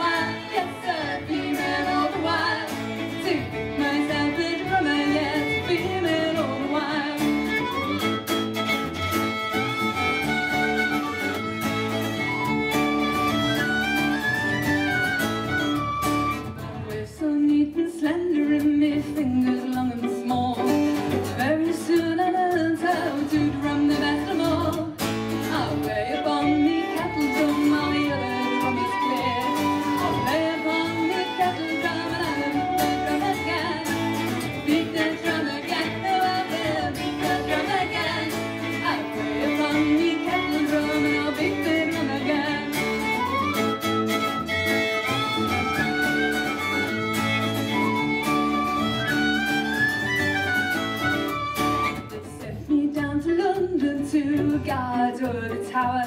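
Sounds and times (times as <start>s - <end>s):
bass guitar: 0.0s - 56.0s
fiddle: 0.0s - 56.0s
strummed acoustic guitar: 0.0s - 56.0s
whistle playing tune: 12.2s - 16.6s, 43.0s - 52.1s.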